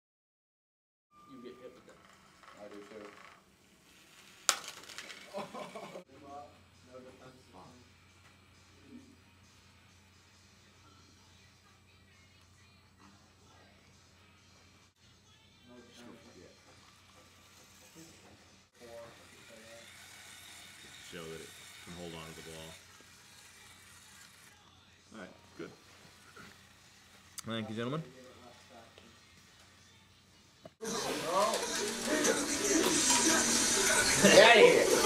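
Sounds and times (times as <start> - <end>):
plastic toy robots crashing: 4.4 - 5.4
small electric motors whirring: 16.6 - 25.0, 25.8 - 27.4, 30.8 - 35.0.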